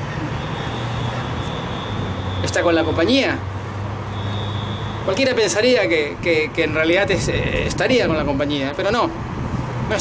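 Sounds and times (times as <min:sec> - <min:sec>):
traffic engine rumble: 0:00.0 - 0:10.0.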